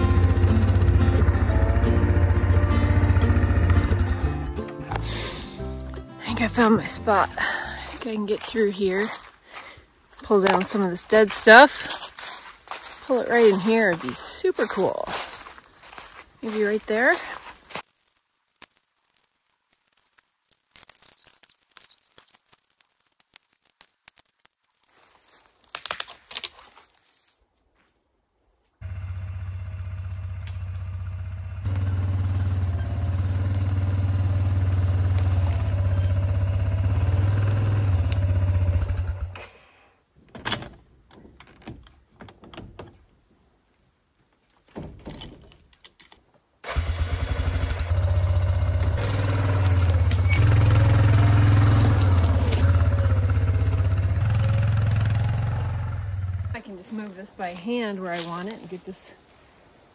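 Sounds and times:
atv engine running: 0.0 - 8.0, 28.8 - 39.4, 46.7 - 56.7.

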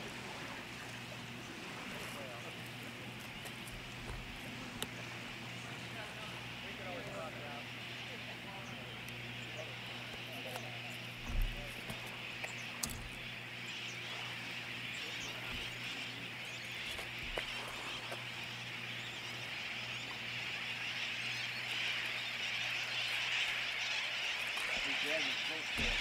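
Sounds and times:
low steady hum: 0.0 - 26.0
many birds calling: 0.0 - 26.0
soft bumps: 25.8 - 26.0.

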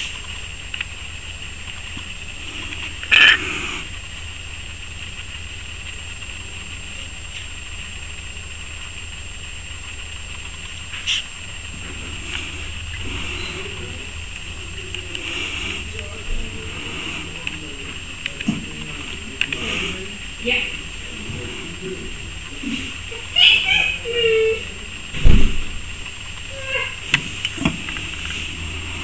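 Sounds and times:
faint steady hiss: 0.0 - 29.0
beetle raspy hisses: 1.9 - 4.2, 10.9 - 25.6, 26.2 - 29.0.

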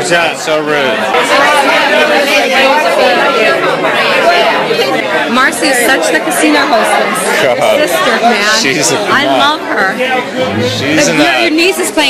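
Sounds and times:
dense party chatter: 0.0 - 12.0.

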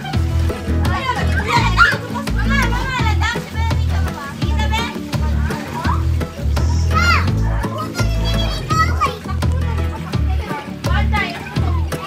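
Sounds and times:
children's voices playing: 0.0 - 12.0
music with bass beat: 0.0 - 12.0.

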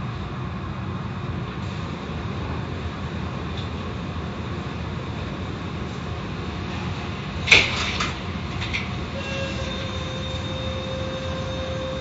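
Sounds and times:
car wash machinery rumble and hiss: 0.0 - 12.0
steady mechanical whine: 0.0 - 12.0.

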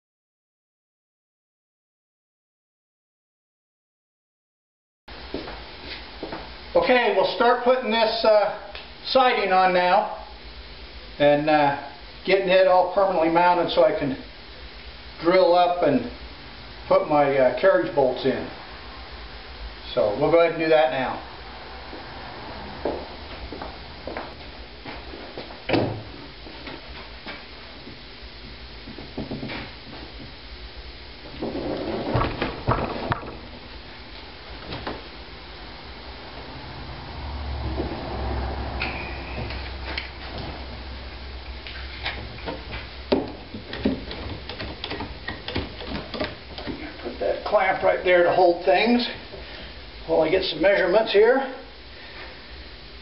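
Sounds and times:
wooden boards knocking and scraping: 31.3 - 33.4, 42.5 - 46.9.

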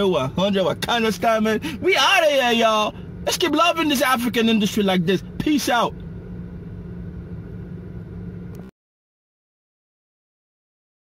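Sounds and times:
car engine idling: 0.0 - 8.7.

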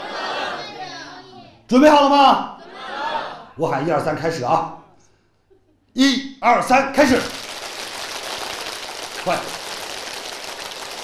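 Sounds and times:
crowd clapping fast: 7.1 - 11.0.

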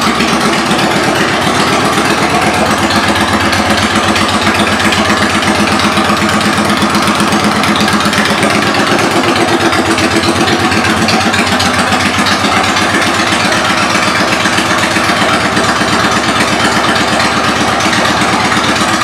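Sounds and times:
motorcycle engine idling: 0.0 - 19.0.

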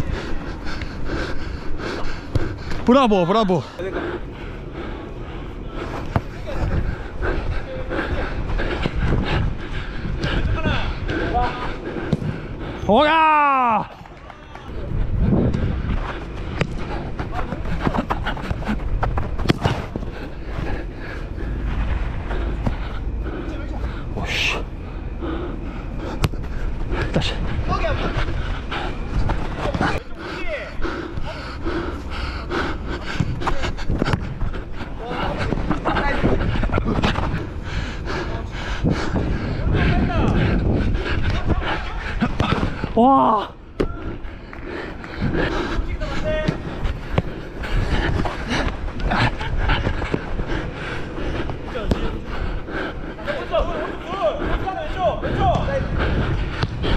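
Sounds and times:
person breathing: 0.0 - 2.8, 3.7 - 12.9, 19.9 - 54.6
players shouting: 10.3 - 14.9, 51.4 - 56.0
running footsteps on artificial turf: 13.8 - 56.9.

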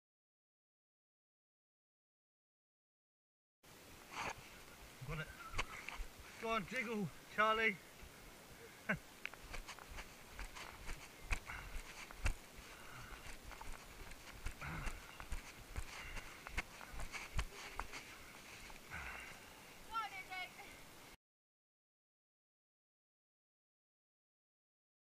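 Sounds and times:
camera jostling: 9.3 - 12.5, 13.1 - 18.1
footsteps on leaves: 9.3 - 18.9.

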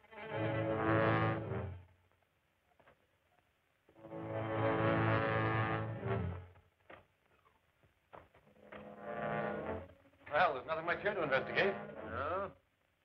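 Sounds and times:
low sustained brass chords: 0.0 - 1.9, 4.0 - 6.6, 8.5 - 12.6.

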